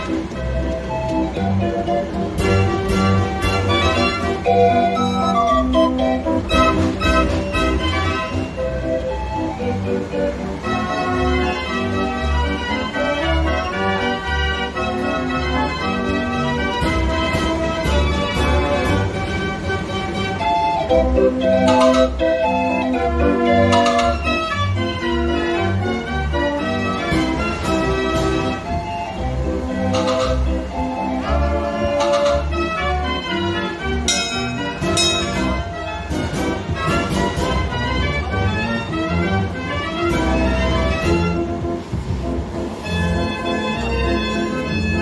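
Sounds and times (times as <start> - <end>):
fairground organ music: 0.0 - 45.0
hiss of noise: 0.0 - 45.0.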